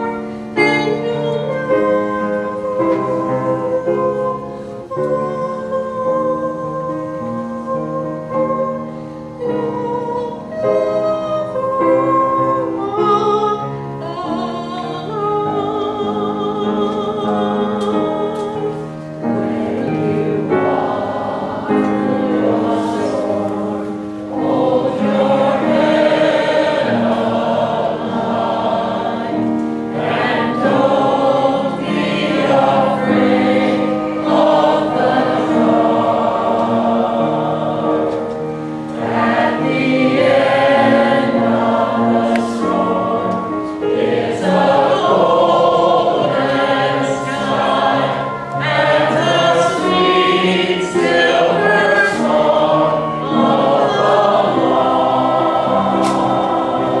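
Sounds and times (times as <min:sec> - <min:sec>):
mixed choir singing: 0:00.0 - 0:08.8, 0:09.4 - 0:57.0.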